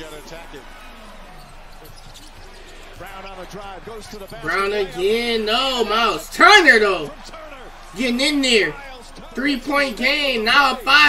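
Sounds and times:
basketball bouncing on court: 0.1s - 4.4s.

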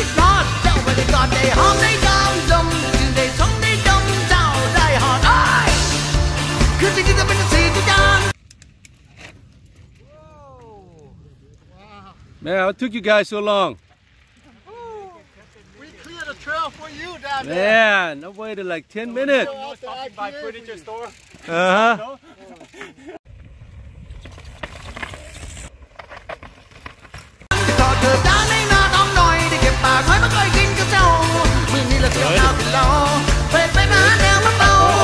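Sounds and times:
person calling out: 14.5s - 15.3s, 33.9s - 35.0s
bike rolling over rocky trail: 22.4s - 27.5s.

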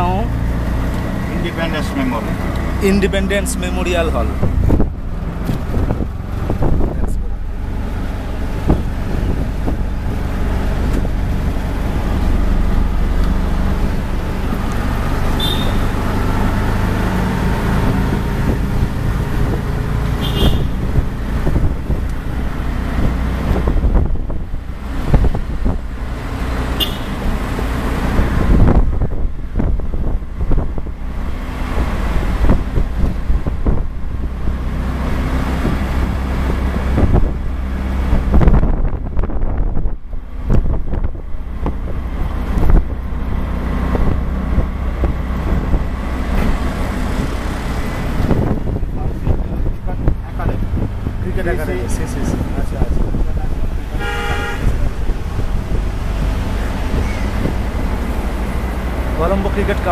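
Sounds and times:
auto-rickshaw engine running: 0.0s - 59.9s
passing traffic: 0.0s - 59.9s
road and wind noise: 0.0s - 59.9s.

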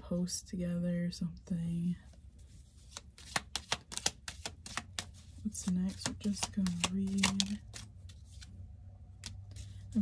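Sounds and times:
cards being shuffled: 2.4s - 10.0s.

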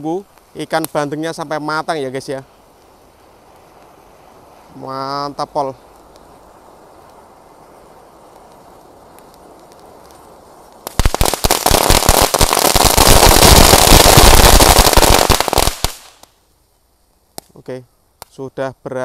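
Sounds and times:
sparks spraying: 0.0s - 16.4s
firework crackling pops: 0.0s - 18.5s
faint steady hiss: 0.0s - 19.0s.

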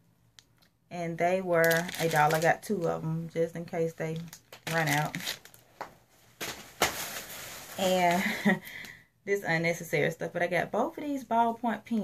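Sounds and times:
packaging rustling: 1.6s - 2.9s, 4.1s - 8.6s.

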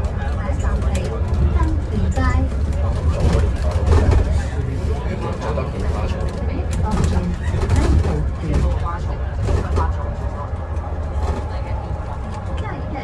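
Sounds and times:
bus cabin low rumble: 0.0s - 13.0s
passengers talking: 0.0s - 13.0s.

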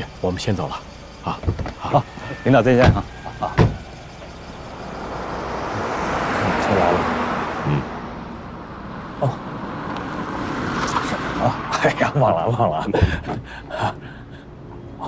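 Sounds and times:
car engine and tyre noise: 0.0s - 15.0s
car door shutting: 1.4s - 1.9s, 2.7s - 3.9s.

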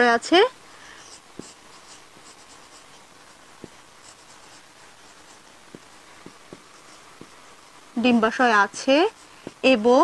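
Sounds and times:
soft knocks: 5.7s - 7.4s.

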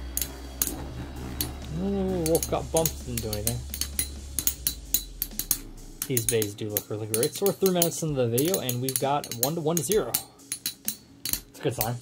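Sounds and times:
low steady hum: 0.0s - 12.0s
spinning tops clinking together: 0.0s - 12.0s.

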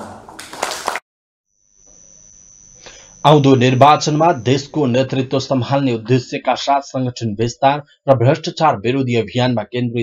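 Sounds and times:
thin steady high whine: 1.5s - 7.4s
man's voice through a microphone: 3.3s - 10.0s.

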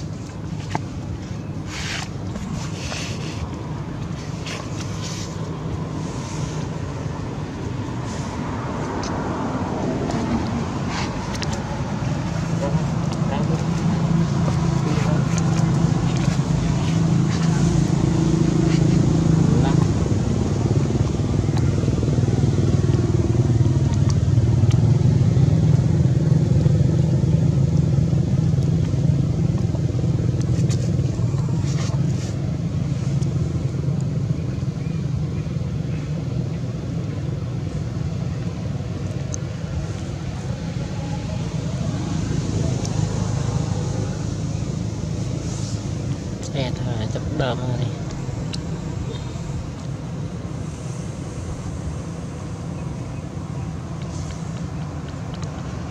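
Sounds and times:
vehicle engine running: 0.0s - 55.9s.

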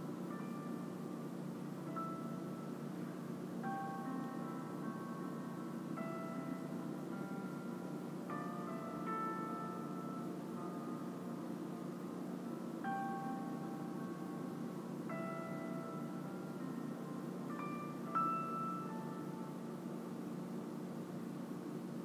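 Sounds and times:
low steady drone: 0.0s - 22.0s
bell-like notes ringing: 12.6s - 19.9s.

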